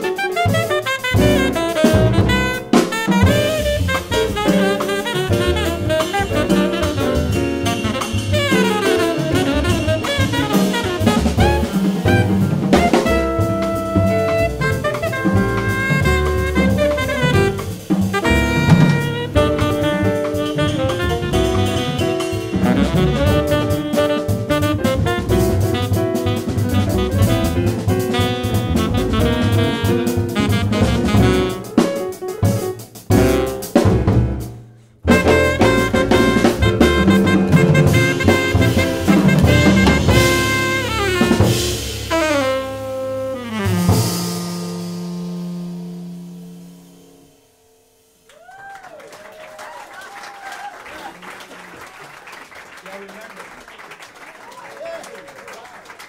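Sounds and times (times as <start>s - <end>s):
tenor saxophone melody: 0.0s - 32.2s, 35.1s - 48.3s
double bass: 0.0s - 48.2s
jazz band final chord: 0.0s - 48.2s
drum kit: 0.0s - 48.8s
piano: 0.0s - 56.0s
whoops and cheers: 48.3s - 51.9s, 54.3s - 55.8s
audience applause: 48.3s - 56.0s.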